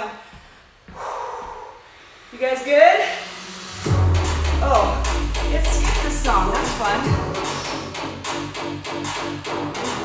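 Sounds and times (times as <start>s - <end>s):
woman breathing out heavily: 0.2s - 2.4s.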